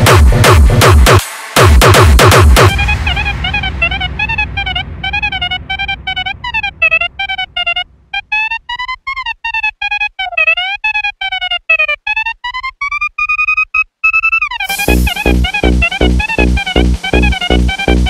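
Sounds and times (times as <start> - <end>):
choppy synth lead melody: 0.0 - 18.0.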